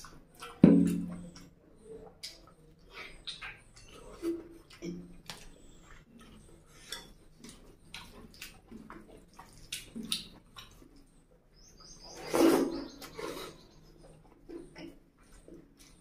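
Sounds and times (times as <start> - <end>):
lip-smacks and mouth clicks: 0.0 - 11.2
wet chewing: 0.0 - 16.0.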